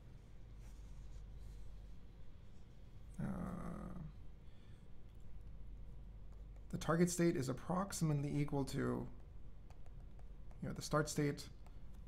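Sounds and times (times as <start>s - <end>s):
low steady hum: 0.0s - 12.0s
faint scratchy rustles: 0.1s - 3.1s.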